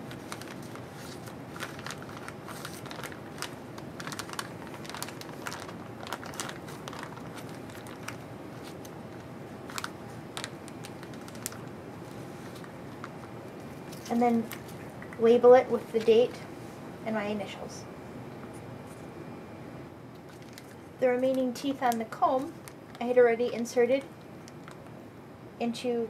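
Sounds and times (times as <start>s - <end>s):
plastic zipper bag crinkling: 0.0s - 14.8s, 20.2s - 23.2s, 24.5s - 24.9s.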